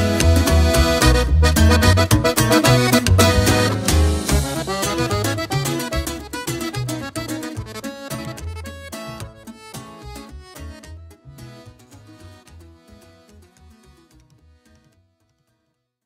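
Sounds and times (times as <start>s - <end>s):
regional band music with accordion: 0.0s - 14.8s.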